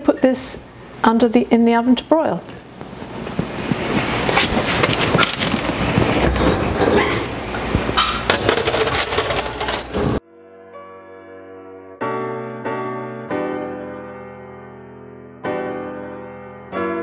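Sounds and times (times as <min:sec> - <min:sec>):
baking sheet clattering on oven rack: 0:07.9 - 0:10.1
soft piano music: 0:10.2 - 0:17.0.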